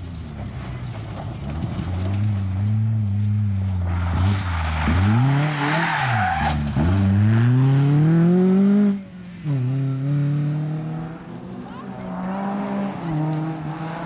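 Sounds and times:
rally car engine revving: 0:00.0 - 0:14.0.

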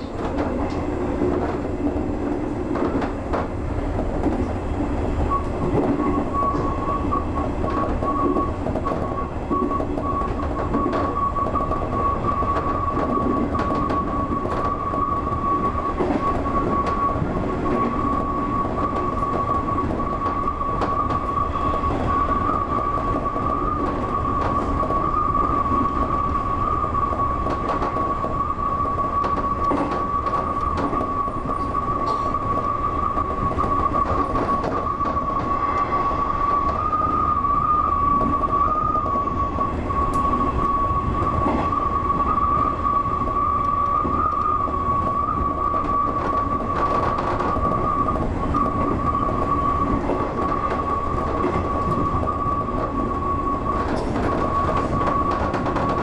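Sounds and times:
rail-joint clicks: 0:00.0 - 0:56.0
train wheels rumbling on rail: 0:00.0 - 0:56.0.

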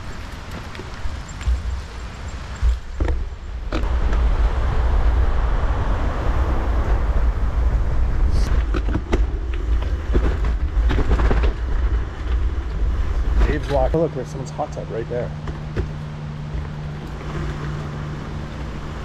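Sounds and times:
bike knocking and rattling: 0:00.0 - 0:04.2, 0:08.5 - 0:19.0
wind buffeting microphone: 0:00.0 - 0:14.2
bicycle tyres on dirt trail: 0:00.0 - 0:19.0.

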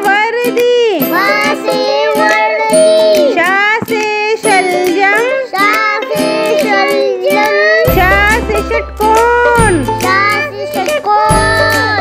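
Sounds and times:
backing music: 0:00.0 - 0:12.0
child-like voice singing: 0:01.0 - 0:03.4, 0:04.4 - 0:08.8, 0:09.5 - 0:12.0.

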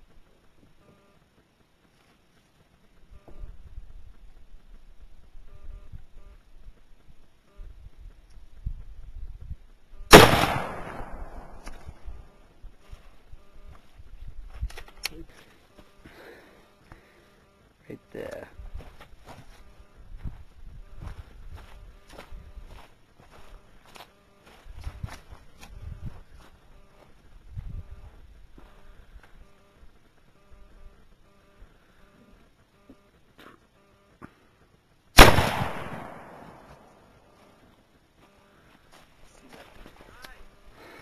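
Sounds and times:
rifle shot: 0:10.1 - 0:11.9, 0:35.2 - 0:37.0.

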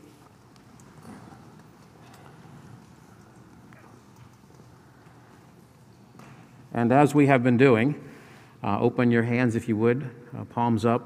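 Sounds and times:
faint shuffling: 0:00.0 - 0:07.2.

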